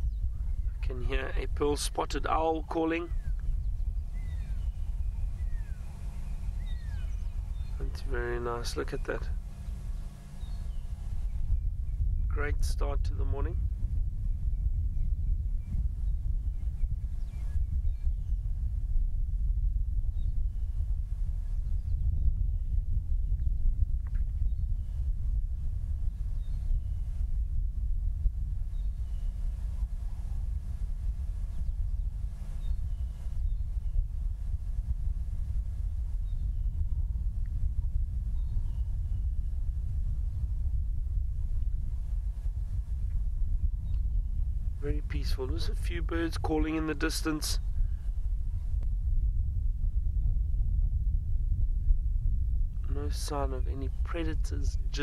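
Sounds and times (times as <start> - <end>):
distant bird calls: 0.0 - 1.7, 2.4 - 12.6, 14.2 - 18.8, 23.4 - 27.4, 28.5 - 46.1
steady low rumble: 0.0 - 55.0.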